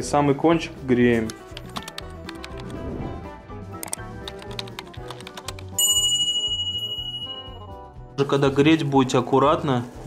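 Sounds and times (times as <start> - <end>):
background music with steady beat: 0.0 - 10.0
bright bell ding: 5.8 - 7.8.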